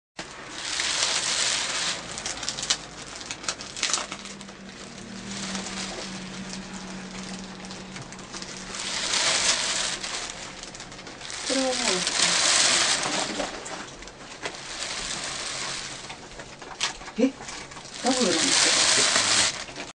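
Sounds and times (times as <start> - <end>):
tissue paper crackling and rustling: 0.2 - 19.9.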